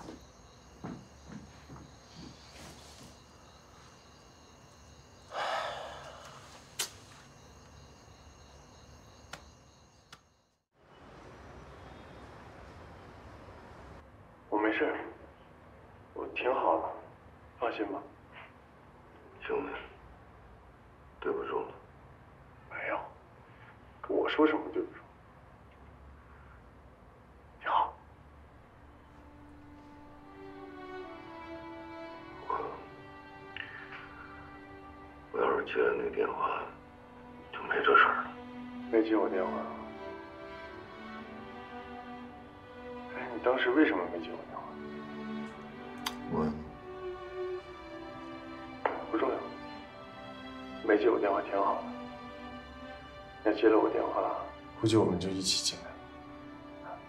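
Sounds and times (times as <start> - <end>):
soft background music: 0.0 - 10.0, 28.5 - 57.0
man breathing heavily: 5.3 - 6.7.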